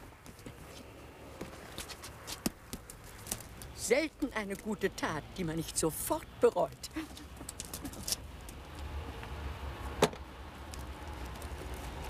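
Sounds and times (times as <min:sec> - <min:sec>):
footsteps: 0:00.0 - 0:03.7.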